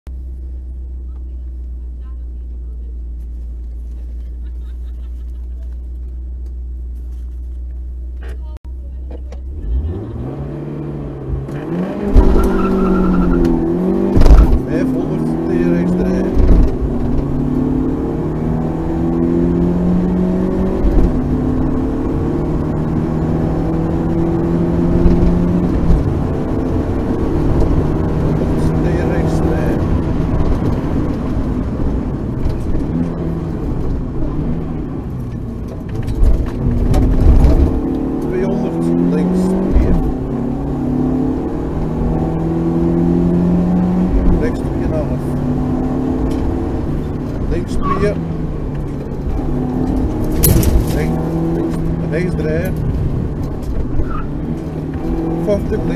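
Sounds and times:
rally car engine revving: 8.2s - 55.9s.

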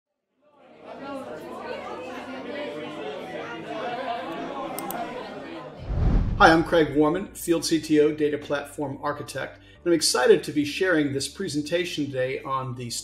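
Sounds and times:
chatter of many voices: 0.5s - 5.8s.

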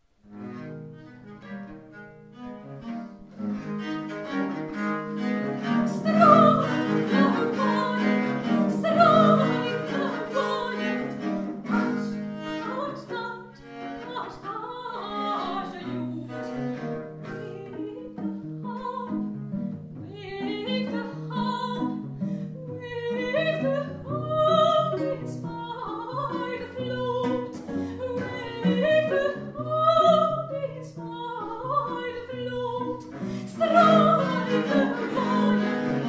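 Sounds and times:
viols playing baroque music: 0.4s - 36.0s.

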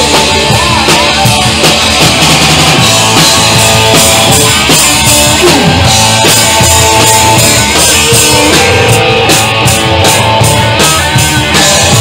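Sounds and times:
live punk rock band: 0.0s - 12.0s.

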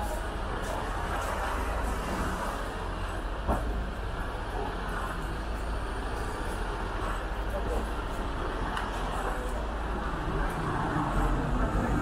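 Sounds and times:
steady low rumble: 0.0s - 12.0s
faint voices of people: 4.3s - 12.0s.

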